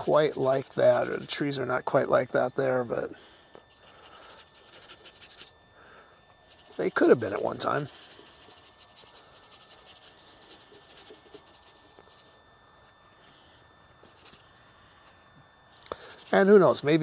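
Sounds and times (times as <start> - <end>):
bristle brush scratching paint: 0.0 - 1.4, 3.7 - 5.5, 6.5 - 12.4, 14.0 - 14.4, 16.0 - 17.0.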